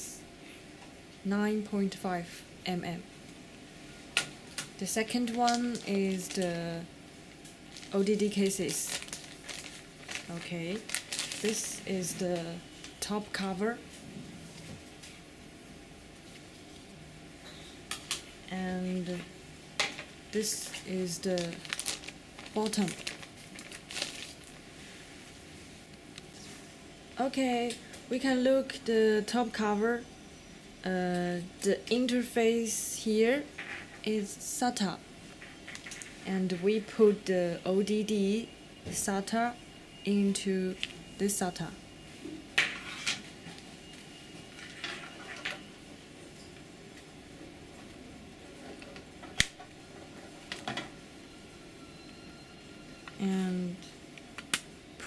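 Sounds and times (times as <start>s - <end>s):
low background hiss: 0.0s - 42.7s, 43.7s - 55.0s
plastic bag crinkling: 4.5s - 6.6s, 7.5s - 12.2s, 20.6s - 24.7s.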